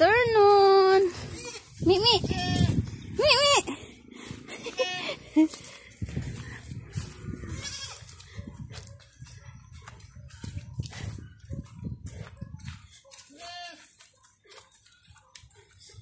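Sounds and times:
footsteps through grass: 0.0 - 3.5, 4.4 - 15.8
young goat bleating: 1.1 - 3.4, 4.7 - 5.2, 7.4 - 8.1, 13.3 - 13.9.

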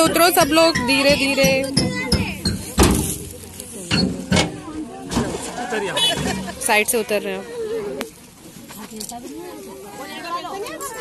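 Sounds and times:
metal tailgate knocking and clanking: 0.0 - 3.3, 3.9 - 5.2
voices: 0.0 - 11.0.

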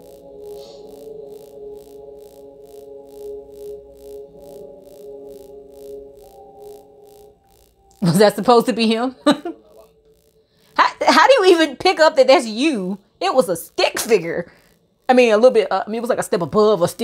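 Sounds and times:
ambient electronic music: 0.0 - 17.0.

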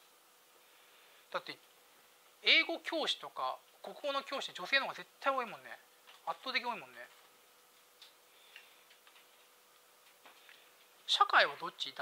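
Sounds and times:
faint steady hum: 0.0 - 12.0
faint irregular clicks: 7.2 - 11.1.

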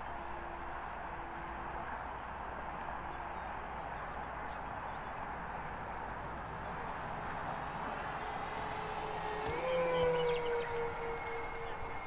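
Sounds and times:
model plane motors whining: 8.5 - 12.0.

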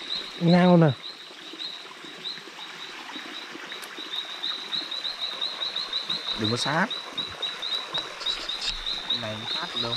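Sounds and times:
insect chirping: 0.0 - 9.9.

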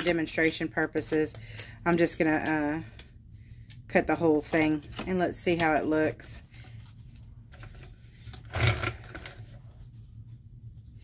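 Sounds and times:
faint handling rustle: 4.4 - 8.4.

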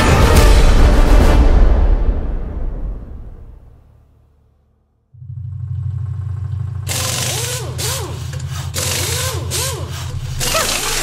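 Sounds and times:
low machine hum: 5.2 - 11.0
power tool grinding: 6.7 - 11.0.

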